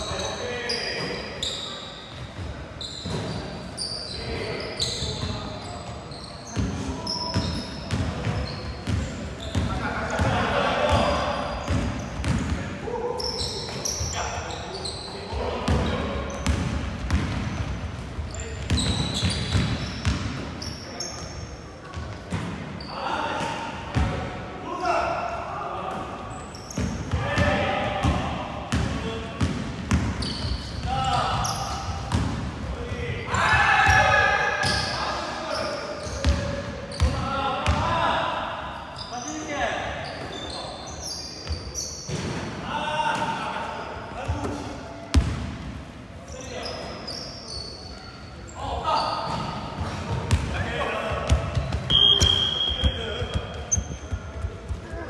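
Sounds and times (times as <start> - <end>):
sneakers squeaking on floor: 0.0 - 24.2, 26.0 - 38.2, 38.8 - 42.5, 44.0 - 45.6, 46.3 - 55.0
players shouting: 33.1 - 34.7.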